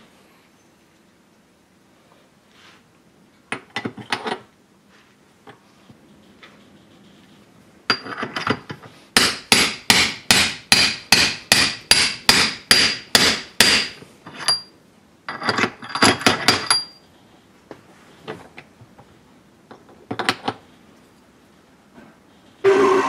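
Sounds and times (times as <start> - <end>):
hammer striking metal punch: 9.2 - 14.6.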